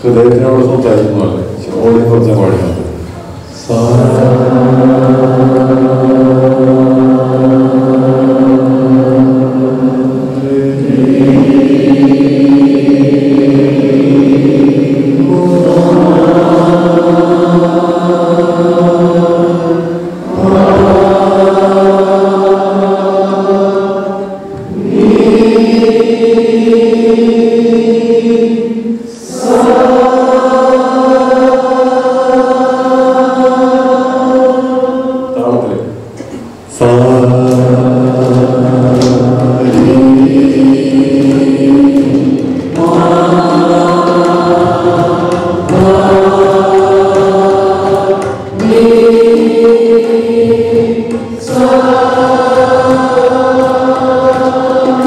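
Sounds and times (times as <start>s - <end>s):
man chanting long held notes: 3.5s - 28.2s.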